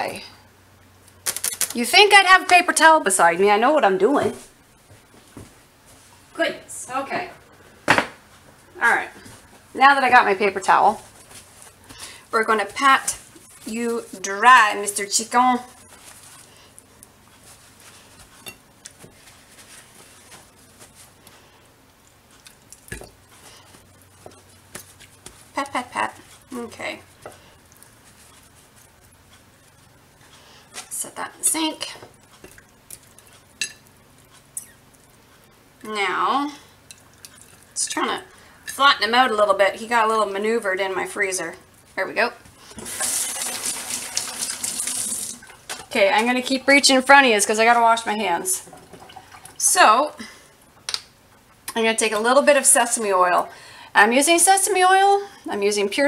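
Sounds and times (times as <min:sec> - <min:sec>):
paper towel rustling on chicken: 0:10.8 - 0:18.4, 0:19.0 - 0:21.7, 0:26.2 - 0:30.9
faucet running over hands: 0:42.8 - 0:45.6.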